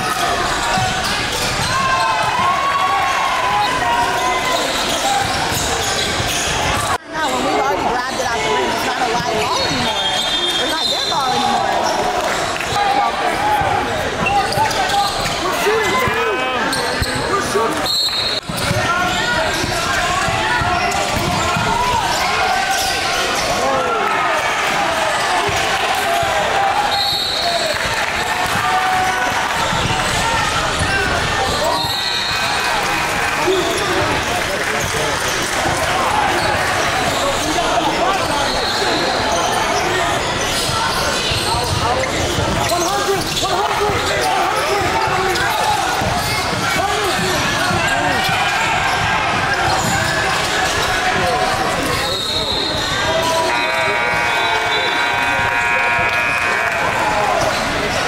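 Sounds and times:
shoe squeals: 0.0 - 6.9, 9.2 - 13.1, 13.9 - 23.8, 25.0 - 28.1, 28.8 - 32.9, 33.5 - 58.0
players and spectators voices: 0.0 - 58.0
basketball bouncing on court: 18.4 - 22.3, 40.6 - 50.8.

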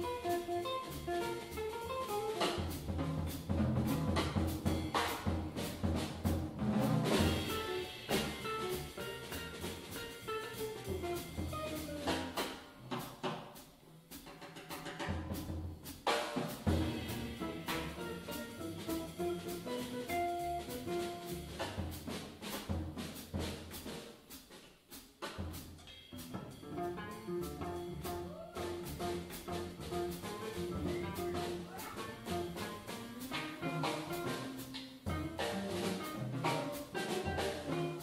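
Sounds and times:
upright double bass: 0.0 - 13.1, 16.5 - 24.0, 25.3 - 38.0
drum kit with cymbals: 0.0 - 38.0.

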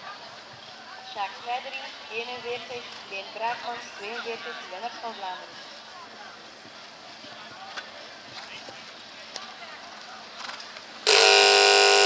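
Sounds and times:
faint crowd voices: 0.0 - 12.0
harsh buzzer tone: 11.1 - 12.0.

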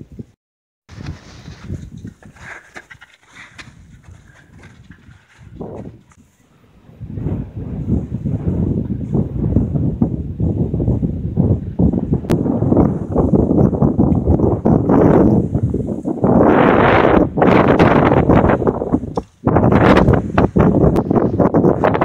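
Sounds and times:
footsteps in snow: 0.9 - 6.4
wind buffeting microphone: 0.9 - 22.0.

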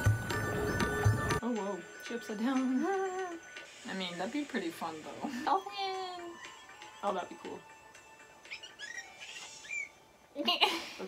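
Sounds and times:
faint background music: 0.0 - 11.0
dolphin whistles: 8.4 - 10.0.

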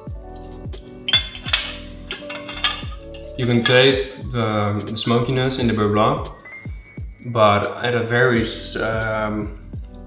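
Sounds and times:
soft music with steady beat: 0.0 - 10.0.

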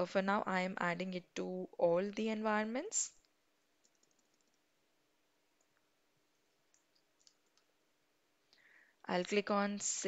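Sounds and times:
faint steady hum: 0.0 - 10.0
computer keyboard clicks: 3.8 - 4.6.

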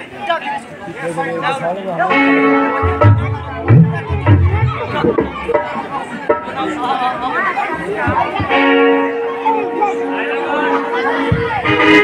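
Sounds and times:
jumble of chatter: 0.0 - 12.0.

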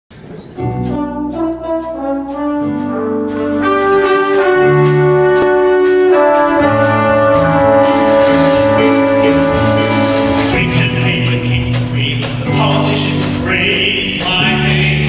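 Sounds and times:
band playing instrumental music: 0.6 - 15.0.

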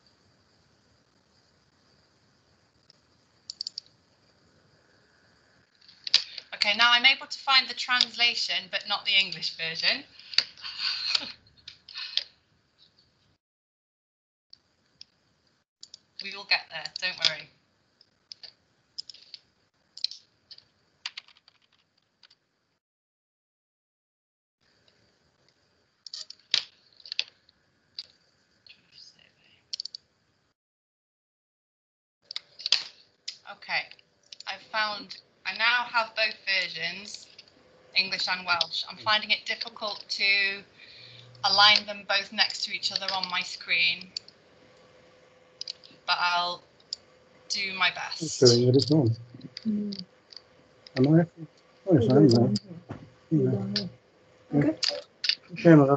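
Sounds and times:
computer mouse clicks: 2.9 - 3.9, 18.3 - 19.4, 29.8 - 30.0
computer keyboard typing: 3.5 - 3.8, 21.0 - 21.8.

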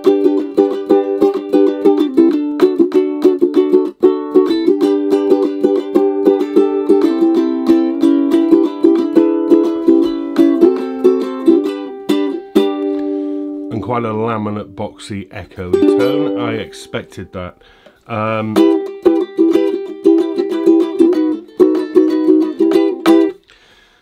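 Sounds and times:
ukulele strummed in chords: 0.0 - 23.4.

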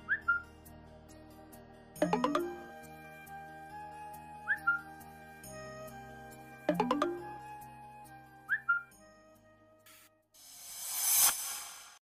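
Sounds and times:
soft background music: 0.0 - 9.9
phone notification chirp: 2.0 - 2.7, 6.7 - 7.3.

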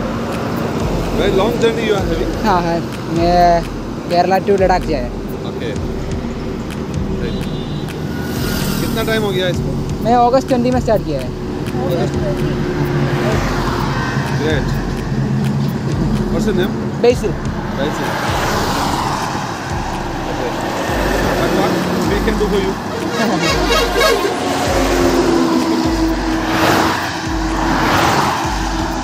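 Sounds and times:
highway traffic passing: 0.0 - 29.0
people talking: 1.2 - 5.9, 7.0 - 7.7, 8.8 - 13.5, 14.3 - 15.0, 15.6 - 18.2, 20.2 - 25.2
people laughing: 20.3 - 25.8.

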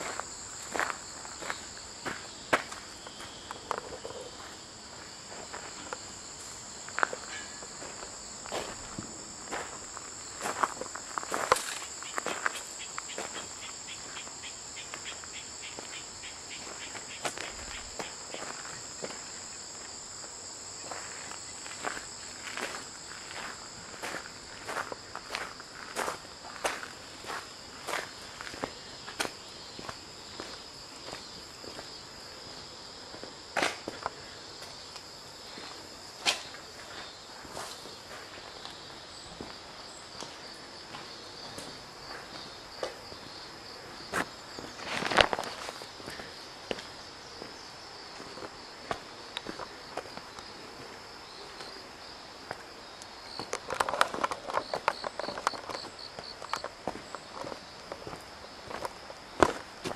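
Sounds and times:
footsteps walking on a path: 0.0 - 14.2, 14.9 - 20.0, 20.8 - 34.8, 35.4 - 59.9.

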